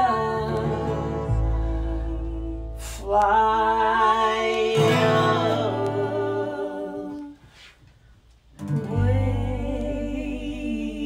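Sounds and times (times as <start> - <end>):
strummed acoustic guitar: 0.0 - 7.1, 8.6 - 10.0
people singing: 0.0 - 7.4, 8.7 - 11.0.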